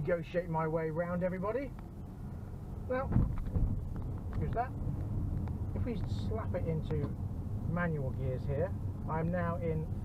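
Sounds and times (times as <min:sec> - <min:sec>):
road and engine rumble: 0:00.0 - 0:10.0.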